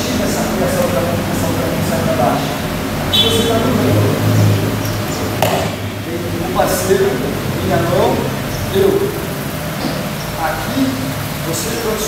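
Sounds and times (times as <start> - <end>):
sharp knock: 5.4 - 5.9.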